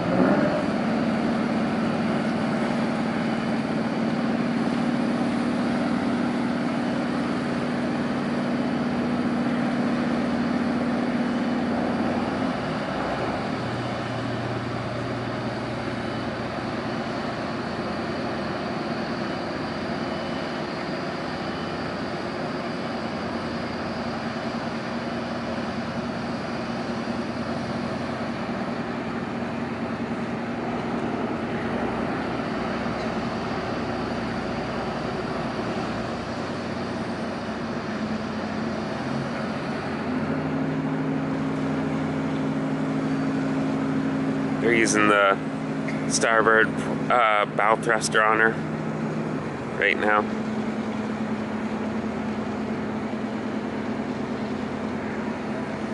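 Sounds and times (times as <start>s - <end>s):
diesel machinery running: 0.0s - 55.9s.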